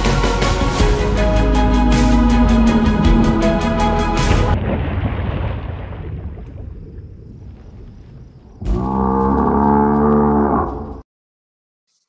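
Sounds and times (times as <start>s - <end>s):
low rumble: 0.6s - 8.6s
deep creature-like call: 1.2s - 4.5s, 8.6s - 11.0s.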